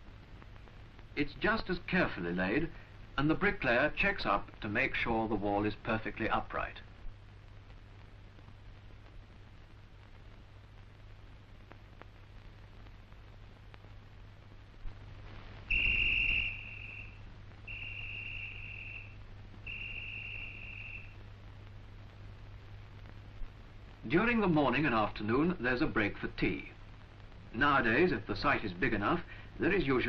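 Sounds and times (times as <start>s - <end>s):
faint low hum and hiss: 0.0s - 30.0s
whistle blasts: 15.7s - 21.2s.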